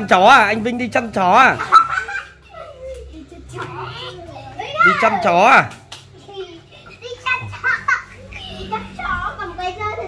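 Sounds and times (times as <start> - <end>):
young children chattering: 1.6 - 10.0.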